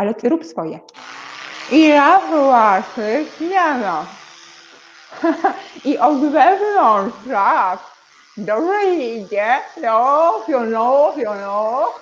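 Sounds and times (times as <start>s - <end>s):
electric toothbrush humming: 0.9s - 12.0s.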